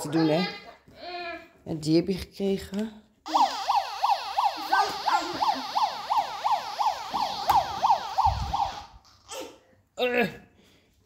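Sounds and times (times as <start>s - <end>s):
toy siren yelping: 3.3s - 9.0s.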